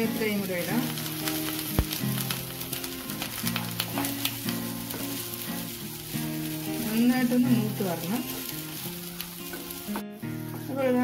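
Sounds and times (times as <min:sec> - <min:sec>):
food sizzling in a pan: 0:00.0 - 0:11.0
instrumental music: 0:00.0 - 0:11.0
wooden spatula stirring: 0:00.0 - 0:11.0.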